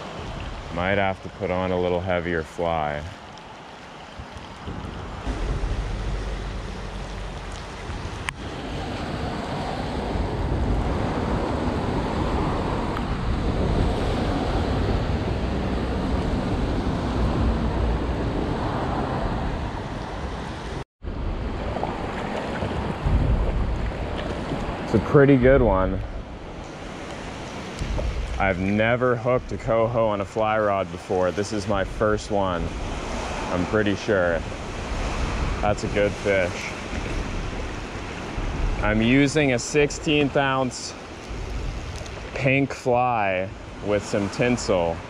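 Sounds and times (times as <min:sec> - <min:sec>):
wind buffeting microphone: 0:00.0 - 0:02.0, 0:02.9 - 0:45.0
creek water rushing: 0:00.0 - 0:45.0
rain on water: 0:00.0 - 0:45.0.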